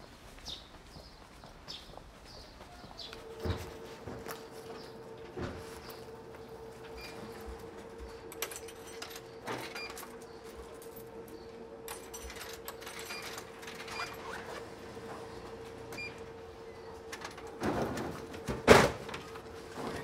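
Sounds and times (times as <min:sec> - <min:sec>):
vending machine humming: 0:03.0 - 0:20.0
coins fed into machine: 0:08.3 - 0:14.3.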